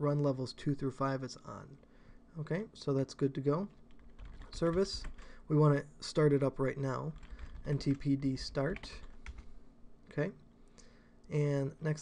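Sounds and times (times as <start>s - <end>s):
computer keyboard keys clicking: 4.0s - 5.2s, 7.2s - 8.0s, 8.7s - 9.4s.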